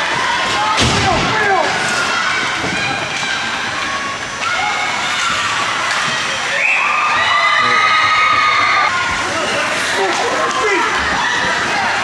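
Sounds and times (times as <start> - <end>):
spectators cheering and shouting: 0.0 - 12.0.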